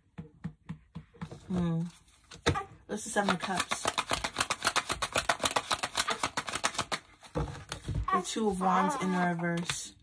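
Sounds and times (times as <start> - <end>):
cards being shuffled: 1.3 - 10.0.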